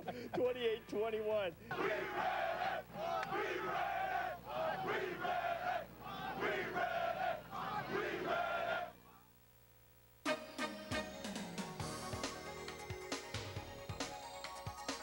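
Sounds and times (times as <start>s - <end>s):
players chanting in unison: 1.7s - 9.0s.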